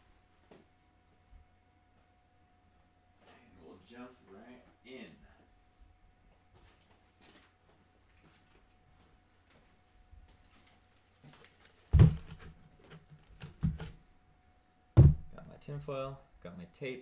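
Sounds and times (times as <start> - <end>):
box thumping on workbench: 11.9 - 12.6, 13.4 - 14.0, 15.0 - 15.4.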